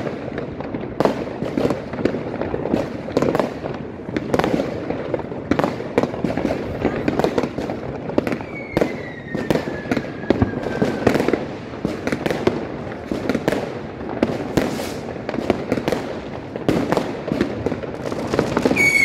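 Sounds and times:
fireworks bangs and crackling: 0.0s - 19.0s
firework whistle falling in pitch: 8.4s - 11.2s, 18.8s - 19.0s.

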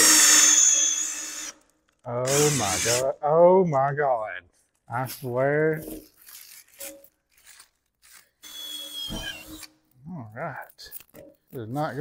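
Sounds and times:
cordless drill whining: 0.0s - 1.6s, 2.3s - 3.0s, 8.4s - 9.7s
plastic sheeting rustling: 5.9s - 8.3s.

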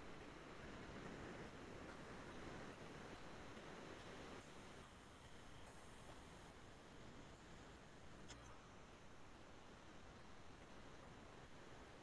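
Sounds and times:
faint steady room hiss: 0.0s - 12.0s.

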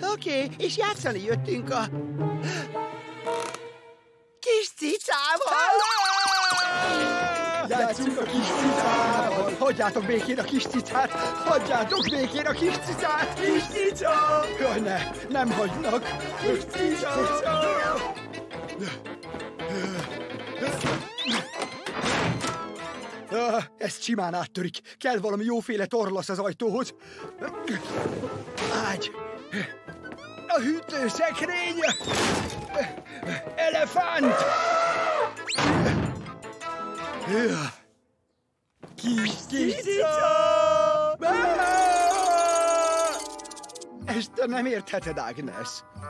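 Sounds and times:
background music: 0.0s - 38.1s, 38.8s - 46.0s
cartoon cat high scream: 5.6s - 7.6s, 34.3s - 35.5s, 41.4s - 43.5s.

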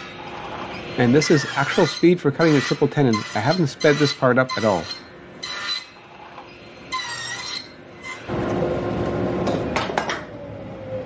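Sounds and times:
table saw cutting wood: 0.0s - 8.4s.

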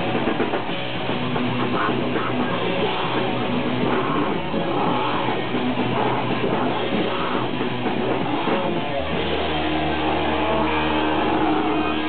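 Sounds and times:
distorted guitar and bass drone: 0.0s - 12.0s.

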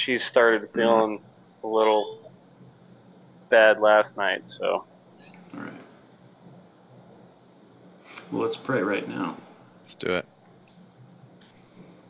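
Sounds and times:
low steady hiss: 0.0s - 12.0s
thin high-pitched whine: 0.0s - 12.0s.

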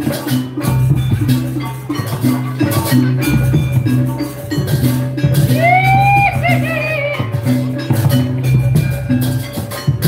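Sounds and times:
gamelan music over loudspeakers: 0.0s - 10.0s.

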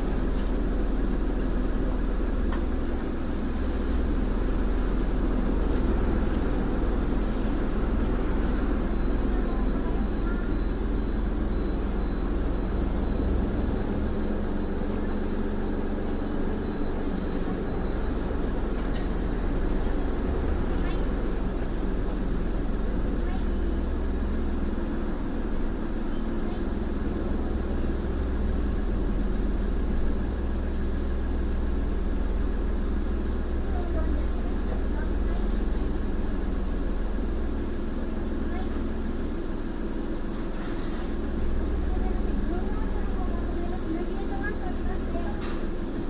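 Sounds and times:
car engine idling: 0.0s - 46.0s.

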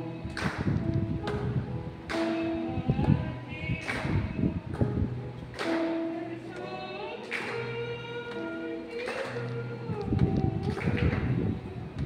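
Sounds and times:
wind rumble on microphone: 0.2s - 2.1s, 2.7s - 5.3s, 9.8s - 12.0s
woman singing a hymn: 2.1s - 12.0s.

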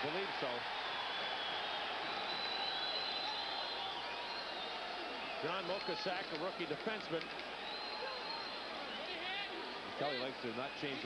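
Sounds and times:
arena crowd din: 0.0s - 11.0s
faint whistles: 0.8s - 6.2s, 7.2s - 9.3s.

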